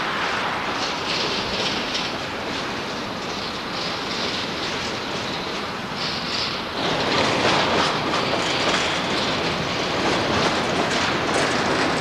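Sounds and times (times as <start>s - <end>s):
freight train wheels on rails: 0.0s - 12.0s.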